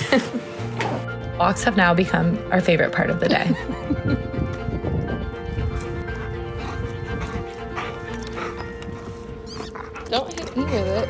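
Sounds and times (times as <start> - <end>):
soft background music: 0.0 - 11.0
dog paws tapping on concrete: 0.6 - 11.0.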